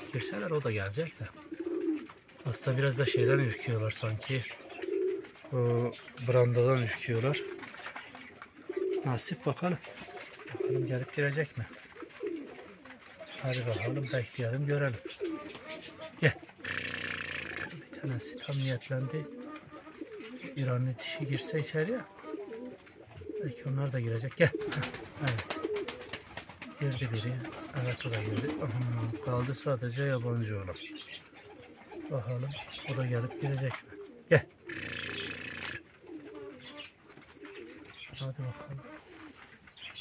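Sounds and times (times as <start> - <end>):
pigeons cooing: 0.0 - 40.0
person calling: 15.3 - 18.3, 34.7 - 35.9
rough rasping noise: 16.6 - 17.9.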